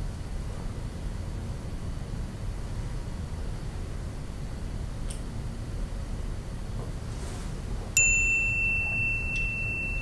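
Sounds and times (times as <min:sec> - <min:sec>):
low room noise: 0:00.0 - 0:10.0
bright bell ding: 0:08.0 - 0:10.0.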